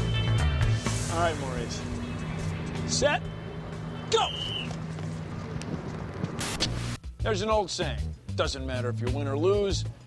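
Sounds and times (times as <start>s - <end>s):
low hum: 0.0s - 7.2s
noisy hiss: 6.3s - 7.9s.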